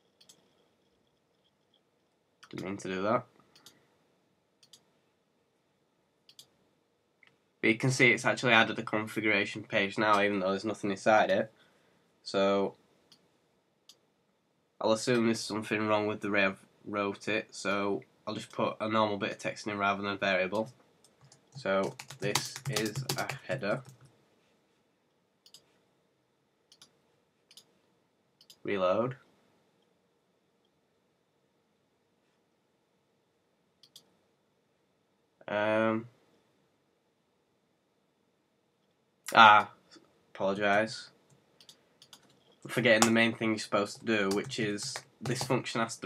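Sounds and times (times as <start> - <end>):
computer mouse clicking: 0.2 - 0.5, 3.5 - 3.8, 4.6 - 4.9, 6.3 - 6.6, 20.6 - 24.1, 25.4 - 25.7, 26.7 - 27.7, 41.3 - 43.2, 44.3 - 45.6
faint computer mouse clicks: 3.5 - 3.8, 4.6 - 4.9, 25.4 - 25.7.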